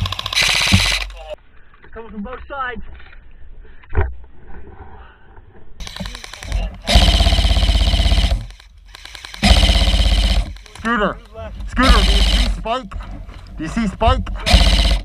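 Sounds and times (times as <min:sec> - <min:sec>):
airsoft rifle full-auto bursts: 0:00.0 - 0:01.4, 0:05.8 - 0:12.7, 0:14.4 - 0:15.0.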